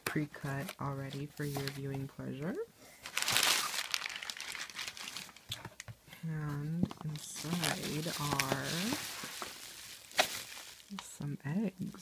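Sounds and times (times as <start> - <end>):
crumpled paper rustling: 3.0 - 5.9, 6.9 - 11.2.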